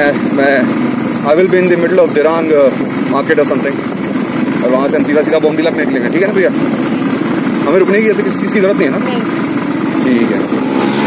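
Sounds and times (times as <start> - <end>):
motorcycle engine running: 0.0 - 11.0
person speaking: 6.5 - 9.4.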